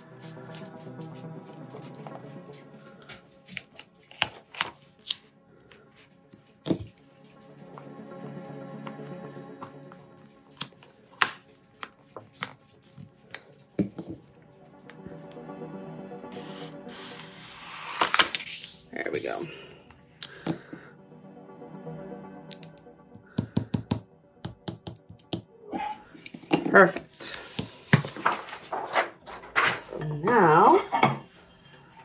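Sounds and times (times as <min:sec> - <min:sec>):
background music: 0:00.0 - 0:32.0
crackling tape and paper handling: 0:00.2 - 0:07.1, 0:16.4 - 0:18.9, 0:27.0 - 0:29.8.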